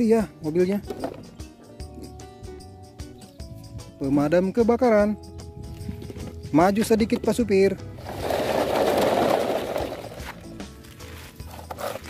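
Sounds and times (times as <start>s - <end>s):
toy wheels rolling over gravel: 8.0s - 12.0s.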